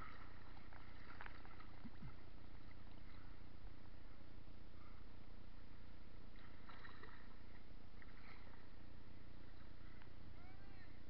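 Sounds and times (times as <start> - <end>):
river water splashing: 0.0 - 3.4, 6.3 - 8.7.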